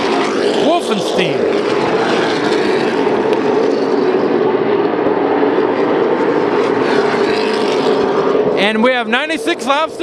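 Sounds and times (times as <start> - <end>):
race car engines droning: 0.0 - 10.0.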